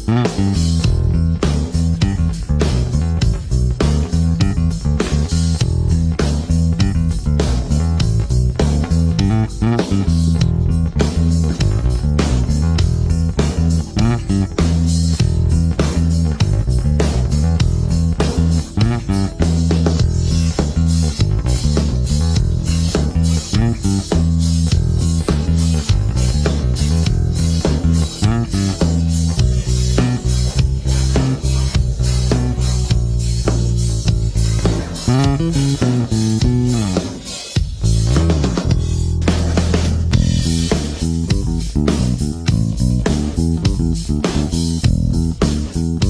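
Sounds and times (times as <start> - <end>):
electric bass plucked fingerstyle: 0.0 - 46.0.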